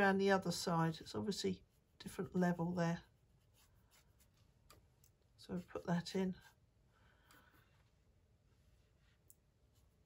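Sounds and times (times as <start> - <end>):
brush strokes on rough paper: 0.0 - 10.0.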